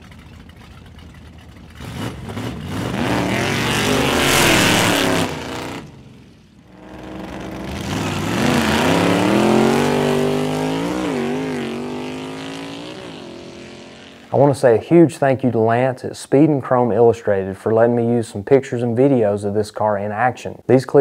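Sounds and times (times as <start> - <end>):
drag racing engine revving: 1.6 - 14.3.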